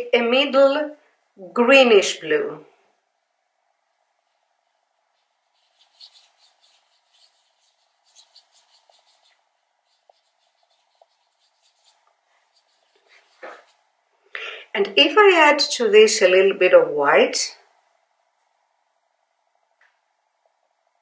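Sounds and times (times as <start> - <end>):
paintbrush strokes on paper: 4.1 - 14.0.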